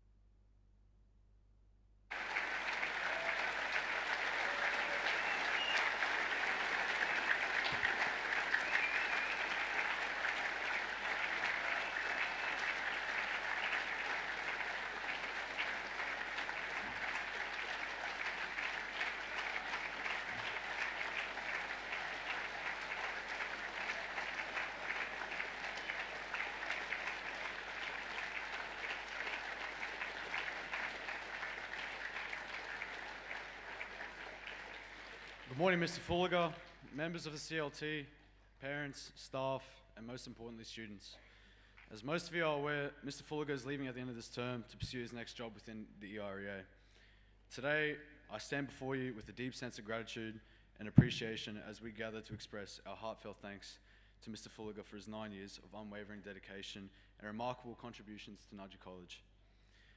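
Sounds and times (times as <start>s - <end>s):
audience applauding: 2.1s - 37.4s.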